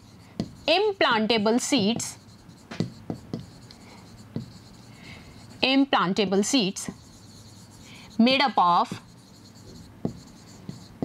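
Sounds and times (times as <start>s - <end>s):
writing strokes on a board: 0.0s - 11.0s.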